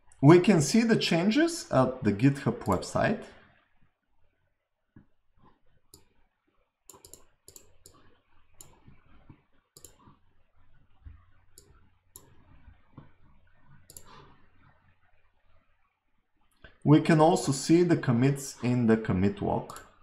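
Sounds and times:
faint computer mouse clicks: 6.9s - 10.2s, 13.9s - 14.3s.

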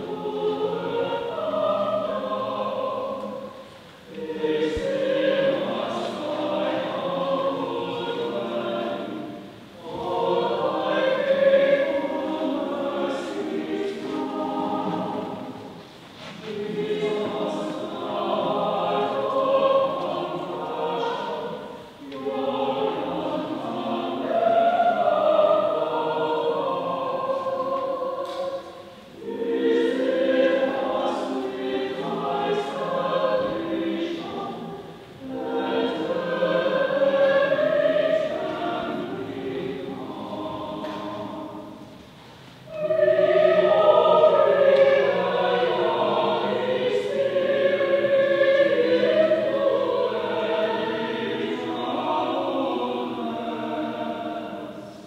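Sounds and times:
choir singing: 0.0s - 55.0s.

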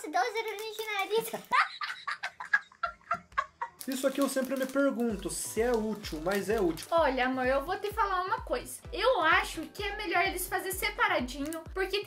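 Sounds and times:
boy laughing hard: 1.3s - 3.8s.

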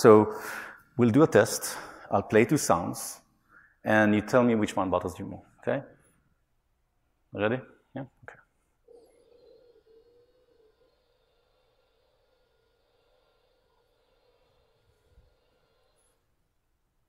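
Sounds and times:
dentist's drill whine over loudspeakers: 8.9s - 16.2s.

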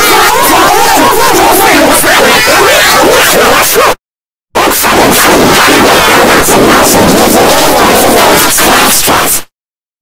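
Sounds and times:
distorted garbled noise: 0.0s - 4.0s, 4.6s - 9.5s.

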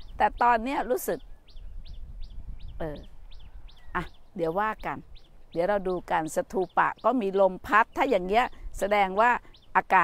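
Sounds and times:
wind rumble on microphone: 0.0s - 7.0s
small bird chirping: 0.0s - 10.0s.

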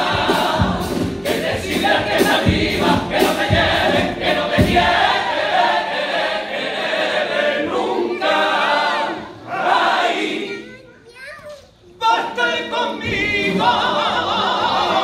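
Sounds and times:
men's chorus singing in harmony: 0.0s - 10.5s, 12.0s - 15.0s.

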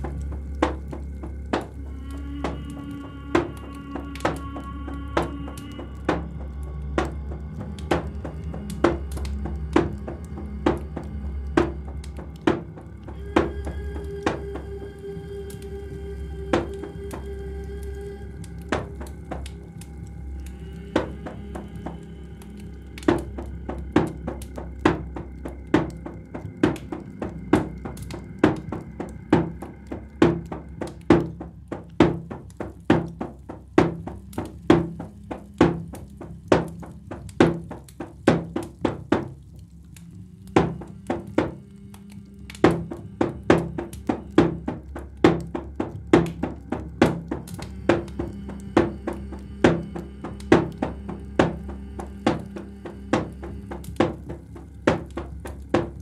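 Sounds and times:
low sustained drone: 0.0s - 32.5s, 39.5s - 56.0s
drum beaten in steady pulse: 0.0s - 56.0s.

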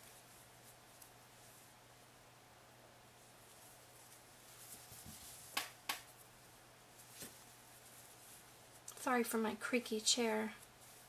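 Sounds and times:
rustling of hands and yarn: 0.0s - 11.0s.

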